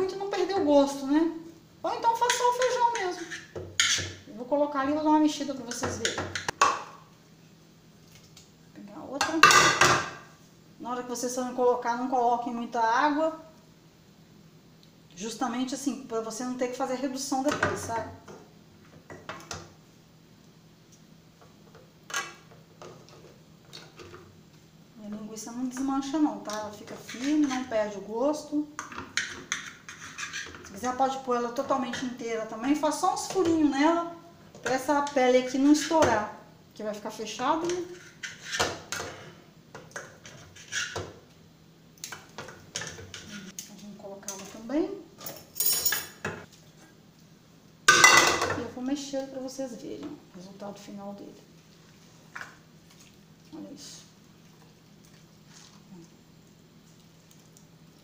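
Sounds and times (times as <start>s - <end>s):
pan knocking and scraping on pot: 2.3s - 4.2s.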